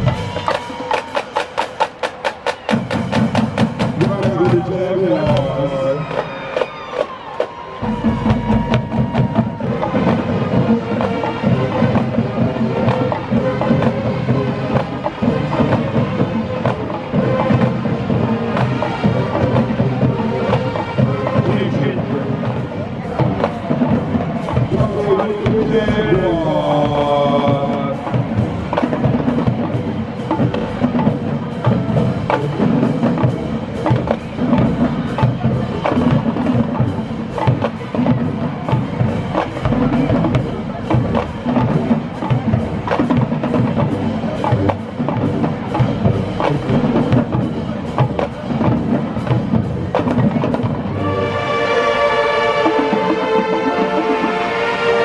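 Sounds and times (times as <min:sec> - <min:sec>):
drumline playing: 0:00.0 - 0:55.0
horns playing held chords: 0:50.8 - 0:55.0.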